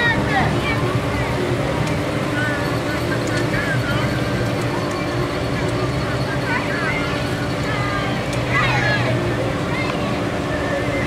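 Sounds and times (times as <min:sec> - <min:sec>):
vehicle engine running slowly: 0:00.0 - 0:11.0
voices in background: 0:00.0 - 0:11.0.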